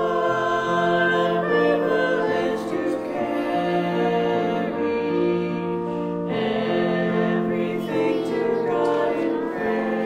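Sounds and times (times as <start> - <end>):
church choir singing sustained notes: 0.0 - 10.0.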